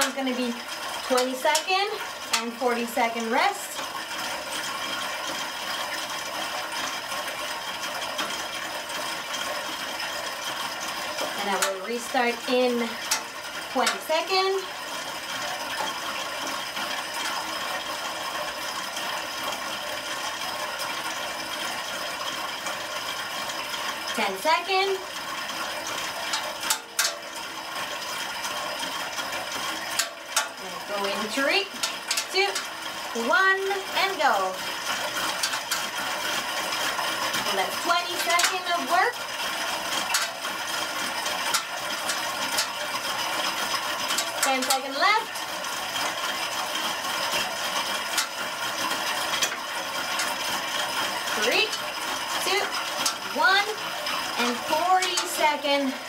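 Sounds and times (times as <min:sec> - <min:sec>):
bike flywheel whirring: 0:00.0 - 0:56.0.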